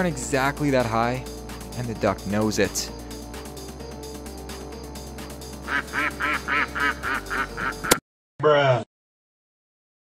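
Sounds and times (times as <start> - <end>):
background music: 0.0 - 8.0
goose honking: 5.7 - 7.8.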